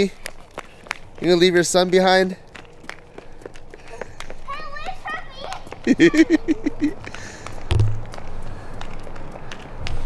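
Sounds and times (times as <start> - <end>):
running footsteps on pavement: 0.0 - 10.0.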